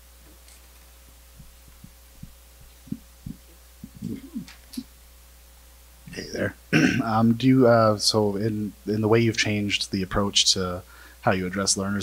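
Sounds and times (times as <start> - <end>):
steady low hum: 0.0 - 12.0
microphone handling thumps: 1.3 - 4.8.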